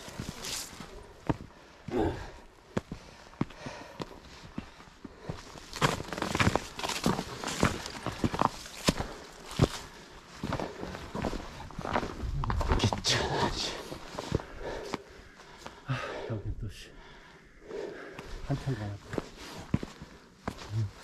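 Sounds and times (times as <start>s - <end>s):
footsteps on frozen rocky ground: 0.0s - 15.8s, 17.6s - 21.0s.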